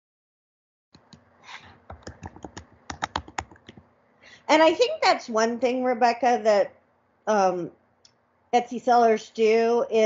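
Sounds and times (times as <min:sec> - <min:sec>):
typing on keyboard: 0:01.9 - 0:03.8.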